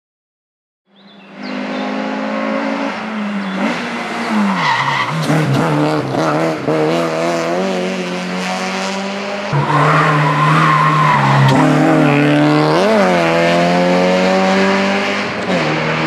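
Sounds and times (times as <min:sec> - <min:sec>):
car engine revving: 0:01.0 - 0:16.0.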